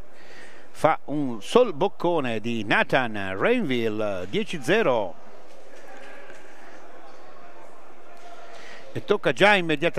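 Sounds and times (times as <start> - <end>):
indoor sports hall ambience: 0.0 - 9.9
man talking: 0.8 - 5.2, 8.9 - 9.9
faint background voices: 4.2 - 9.4.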